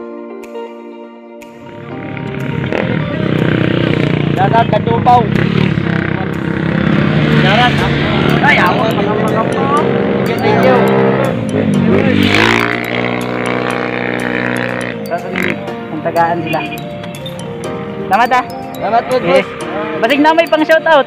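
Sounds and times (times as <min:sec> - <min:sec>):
background music with steady beat: 0:00.0 - 0:21.0
people talking: 0:07.3 - 0:11.2.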